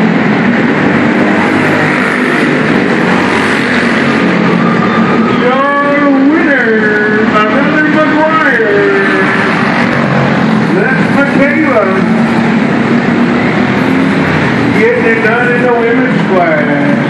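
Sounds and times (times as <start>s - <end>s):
kart engines revving: 0.0s - 17.0s
kart passing close: 0.0s - 17.0s.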